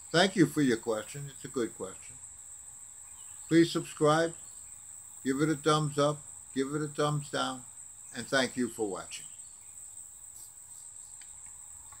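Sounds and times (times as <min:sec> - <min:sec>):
crickets trilling: 0:00.0 - 0:12.0
faint clicks: 0:11.1 - 0:12.0.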